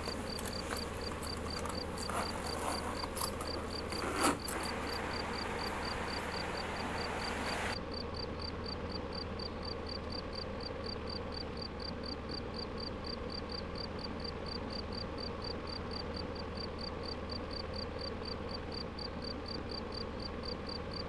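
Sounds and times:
background hiss: 0.0s - 7.8s
cricket chirping: 0.0s - 21.0s.

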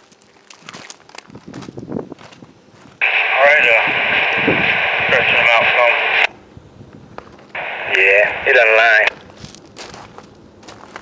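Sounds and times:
faint crunching and clicks: 0.0s - 6.3s, 7.2s - 11.0s.

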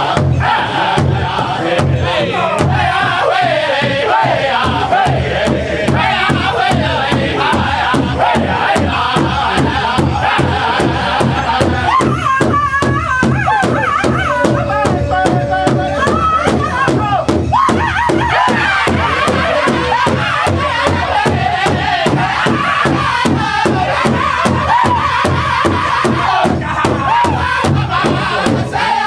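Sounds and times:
group singing in high voices: 0.0s - 29.0s
large hand drum beating: 0.0s - 29.0s.

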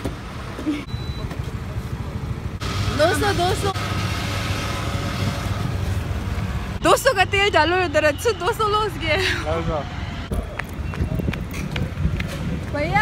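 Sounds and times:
low rumble of engines: 0.0s - 13.0s.

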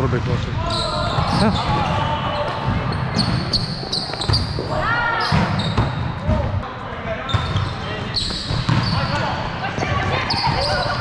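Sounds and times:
players' voices: 0.0s - 11.0s.

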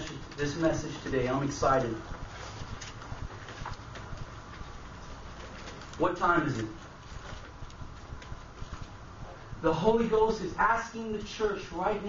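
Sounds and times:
room hiss: 0.0s - 12.0s
faint footsteps: 1.6s - 9.6s.

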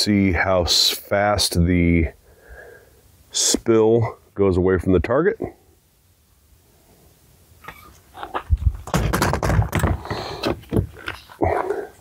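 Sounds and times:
flashlights knocking and clattering: 8.2s - 11.2s.

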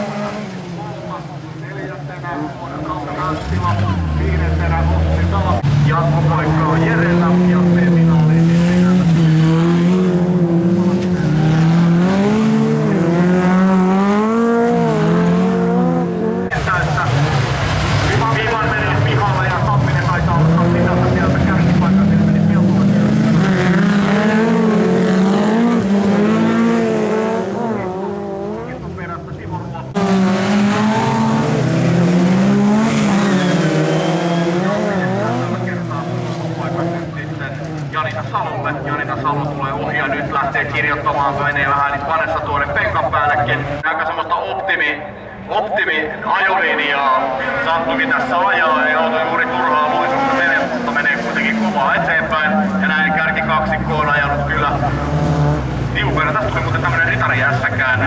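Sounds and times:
race car engines revving: 0.0s - 58.0s.

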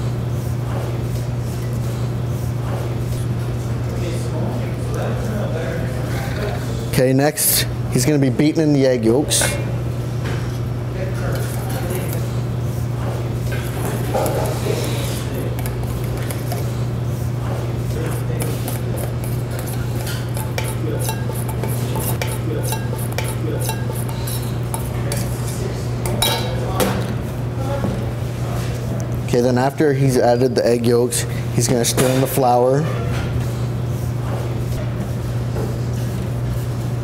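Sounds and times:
steady low hum: 0.0s - 31.7s
spatula scraping metal bowl: 13.5s - 16.7s, 18.0s - 25.6s.

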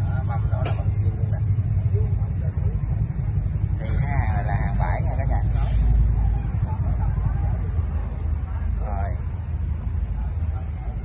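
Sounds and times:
engine idling rumble: 0.0s - 11.0s
faint voices: 0.0s - 11.0s.

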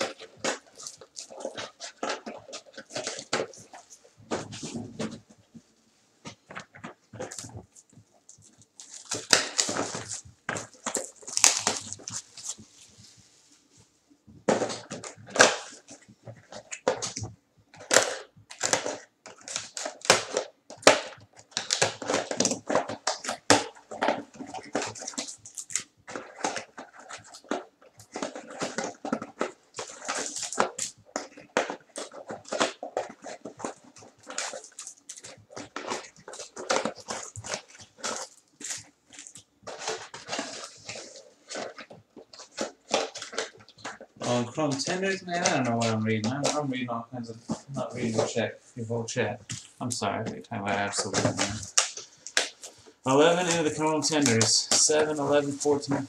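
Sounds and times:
plastic wrapping crinkling and tearing: 0.0s - 5.4s, 6.2s - 13.6s, 14.4s - 56.0s.

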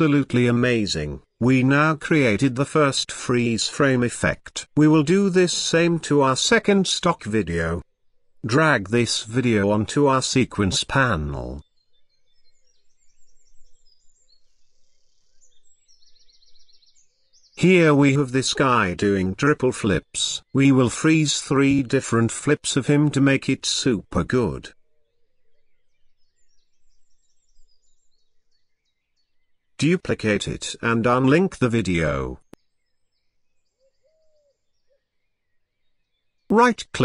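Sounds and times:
birds chirping faintly: 0.0s - 37.0s
low outdoor background: 0.0s - 37.0s.

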